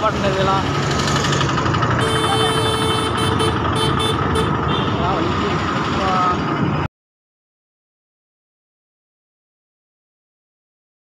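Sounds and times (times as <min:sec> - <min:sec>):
road noise: 0:00.0 - 0:06.9
vehicle engine: 0:00.0 - 0:06.9
steady tone: 0:02.0 - 0:04.5.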